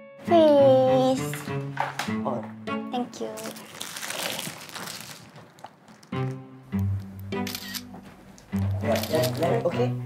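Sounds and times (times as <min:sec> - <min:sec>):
background music with low notes: 0:00.0 - 0:03.3, 0:06.1 - 0:10.0
phone camera shutter click: 0:07.4 - 0:07.9.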